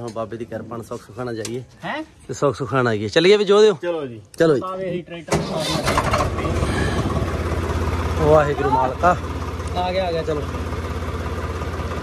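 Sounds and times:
tractor diesel engine starting and running: 5.3 - 12.0.

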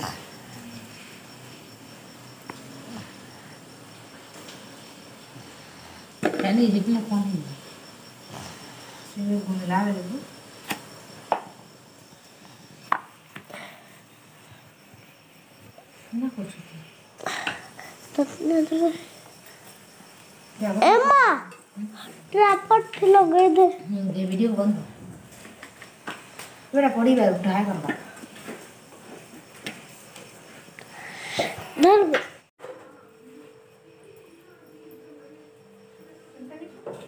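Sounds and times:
dough worked in a steel bowl: 0.0 - 30.8.

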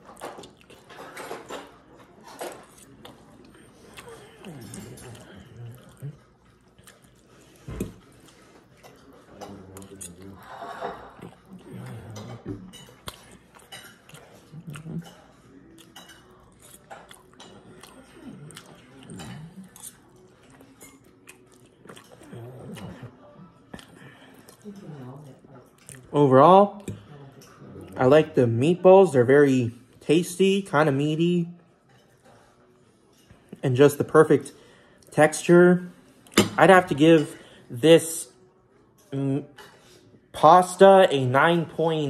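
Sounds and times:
person chewing food: 0.0 - 24.9.

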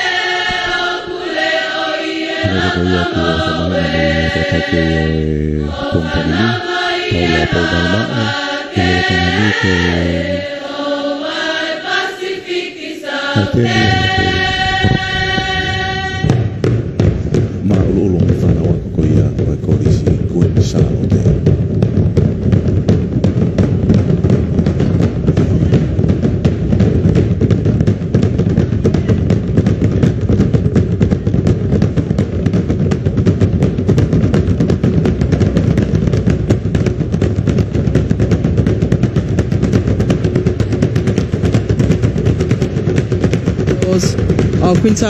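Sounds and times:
drum ensemble beating rapid rhythm: 2.3 - 10.5, 13.4 - 45.0.

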